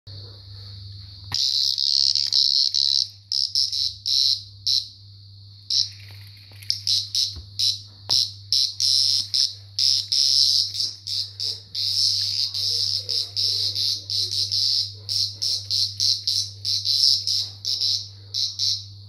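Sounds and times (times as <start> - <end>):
cicada buzzing in stuttering bursts: 1.3 - 5.0, 5.6 - 18.9.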